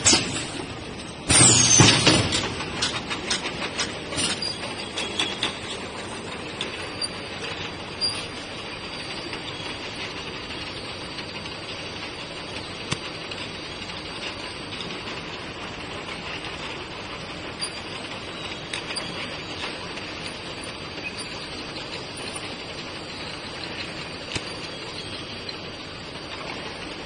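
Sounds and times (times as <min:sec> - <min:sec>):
capping machine clattering: 0:00.0 - 0:27.0.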